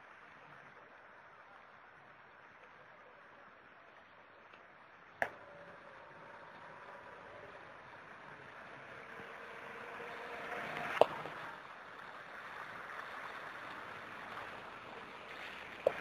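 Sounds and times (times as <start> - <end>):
floodwater rushing over street: 5.8 - 16.0.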